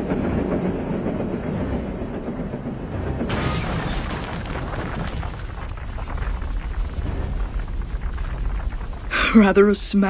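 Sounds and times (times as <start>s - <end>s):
boulder rumbling over rocks: 3.6s - 9.1s
stones clattering: 3.7s - 9.1s.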